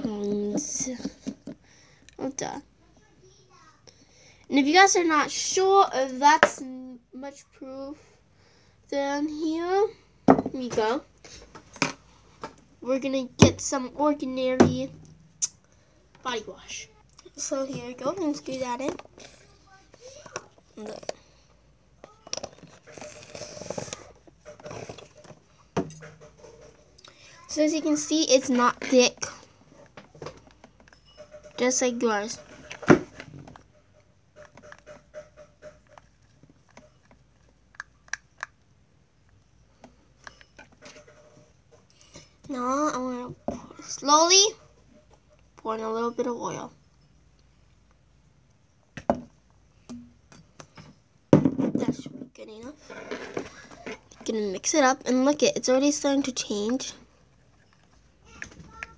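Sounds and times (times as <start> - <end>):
squeeze bottle squelching spurts: 22.3 - 25.2.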